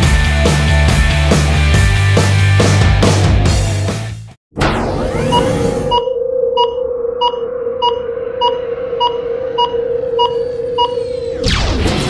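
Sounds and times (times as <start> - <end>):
synthesized drone: 4.6 - 12.0
short electronic beeps: 5.2 - 11.2.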